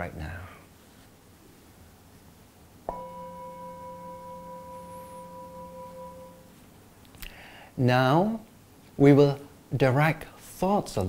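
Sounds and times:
metal singing bowl ringing: 2.9 - 6.6.

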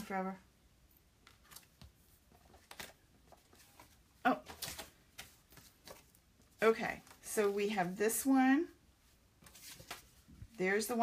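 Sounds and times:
papers rustling on a table: 1.2 - 7.9, 9.0 - 10.6.

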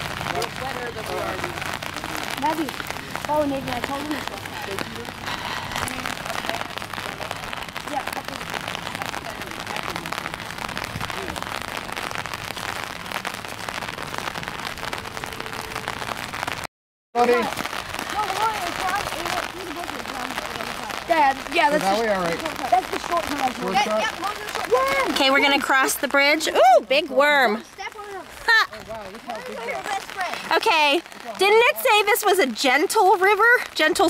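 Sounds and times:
faint voices chattering: 0.0 - 16.0, 17.2 - 26.6, 27.3 - 34.0
steady rain falling: 0.0 - 34.0.

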